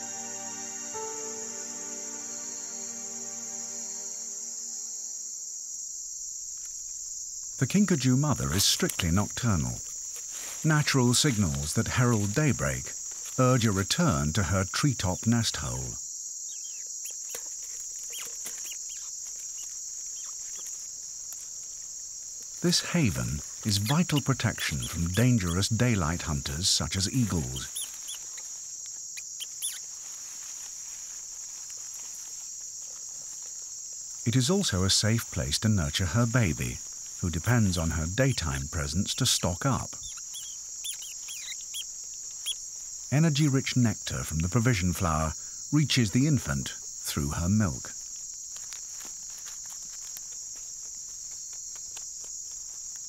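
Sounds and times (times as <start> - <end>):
short high chirps: 0.0 - 5.4
faint short insect chirps: 0.0 - 7.6, 16.0 - 25.6, 27.1 - 34.3, 39.9 - 43.2
insects trilling buzz: 0.0 - 53.0.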